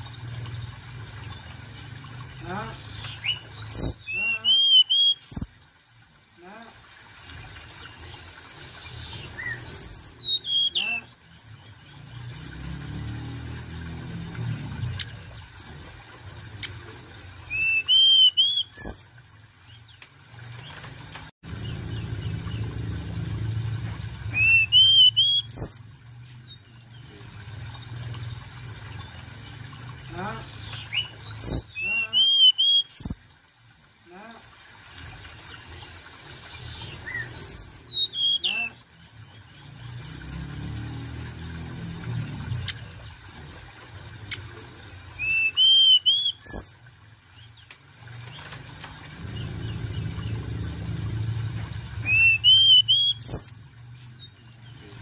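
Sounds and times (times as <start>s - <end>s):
bird whistling song: 2.9s - 5.5s, 9.3s - 11.2s, 17.5s - 19.1s, 24.3s - 25.9s, 30.8s - 33.2s, 37.0s - 38.8s, 45.2s - 46.8s, 52.0s - 54.1s
low steady rumble: 20.4s - 31.4s, 46.8s - 55.0s.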